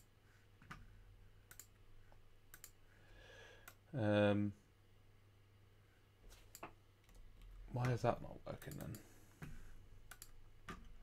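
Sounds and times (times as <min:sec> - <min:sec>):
low room hum: 0:00.0 - 0:11.0
computer mouse clicks: 0:01.5 - 0:01.8, 0:02.5 - 0:02.8, 0:08.6 - 0:11.0.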